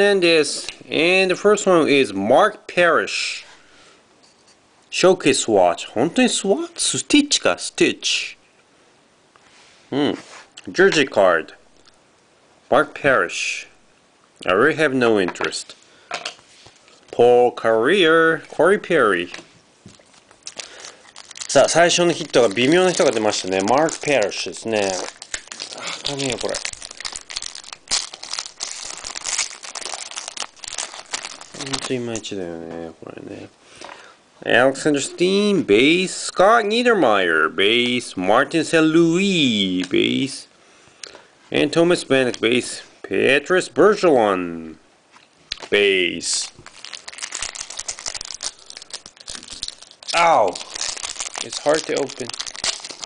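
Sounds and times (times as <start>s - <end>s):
foil wrapper crinkling: 19.9s - 32.3s, 46.3s - 53.0s.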